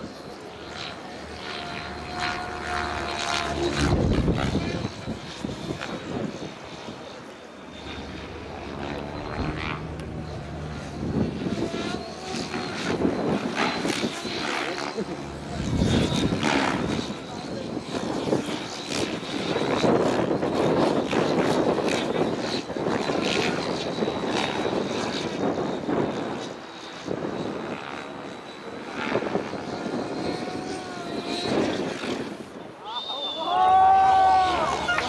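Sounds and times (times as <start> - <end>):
rc helicopter rotor whirring: 0.0 - 35.0
people talking: 14.0 - 18.7, 32.8 - 35.0.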